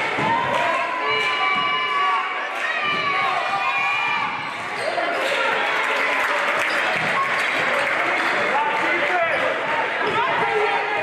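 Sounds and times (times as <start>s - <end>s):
crowd voices and shouting: 0.0s - 11.0s.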